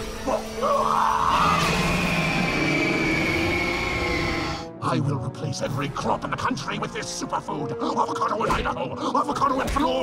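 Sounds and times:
cartoon monster roar: 0.5s - 4.7s.

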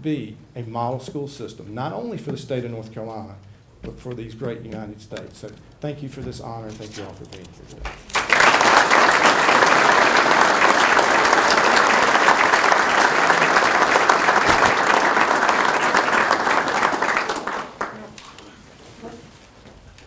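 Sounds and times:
audience applauding: 7.9s - 18.4s.

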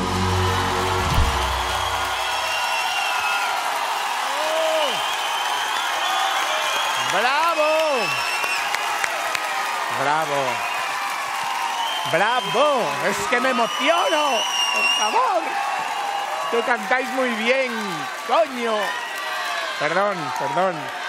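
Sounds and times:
audience applauding and cheering: 0.0s - 21.0s
loud shouts from crowd: 0.4s - 21.0s.

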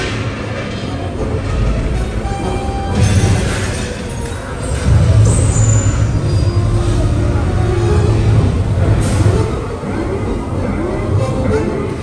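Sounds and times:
deep rumbling sound effects: 0.0s - 11.2s
high metallic squeals: 2.0s - 10.4s.

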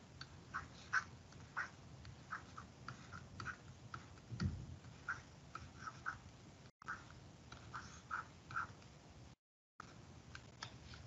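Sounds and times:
stylus scratching on tablet screen: 0.0s - 9.0s, 9.8s - 11.0s.

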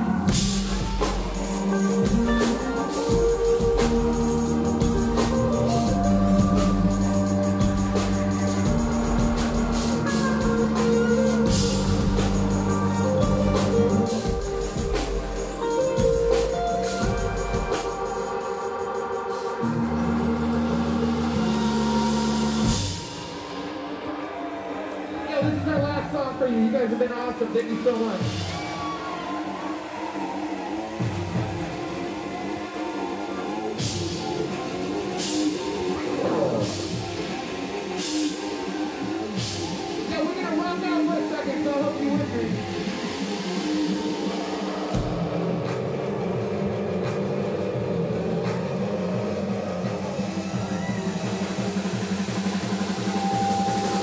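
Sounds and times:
deep bass line: 0.0s - 18.4s, 19.6s - 23.1s
live rock band playing: 0.0s - 23.8s.

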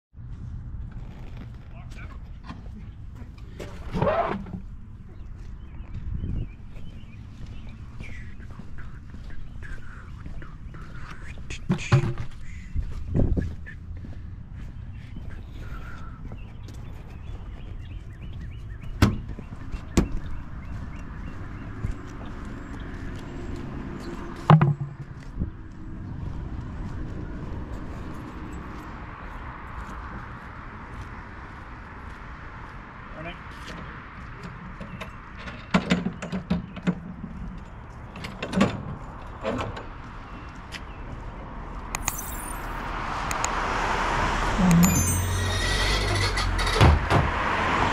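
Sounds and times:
street noise rumble: 0.2s - 47.9s.

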